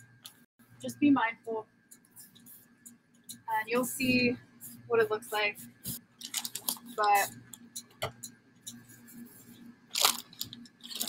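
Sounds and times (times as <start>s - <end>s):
plastic bag crinkling: 6.2s - 7.0s, 9.9s - 11.0s.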